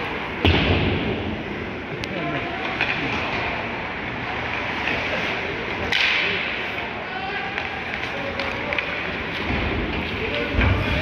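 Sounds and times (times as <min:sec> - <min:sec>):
skates scraping ice: 0:02.4 - 0:11.0
sticks clicking on puck: 0:07.5 - 0:09.4.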